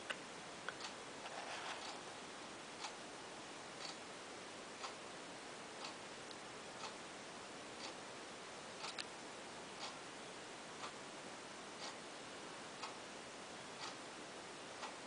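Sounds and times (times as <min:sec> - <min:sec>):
background hiss: 0:00.0 - 0:15.0
faint rustle: 0:01.2 - 0:02.2
clock ticking: 0:03.8 - 0:04.0, 0:07.8 - 0:08.0, 0:11.8 - 0:12.0, 0:12.8 - 0:13.0, 0:13.8 - 0:14.0.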